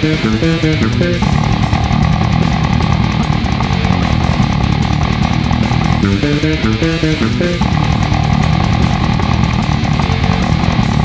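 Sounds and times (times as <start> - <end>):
distorted guitar: 0.0 - 11.0
drums: 0.0 - 11.0
fretless bass played fast: 0.0 - 11.0.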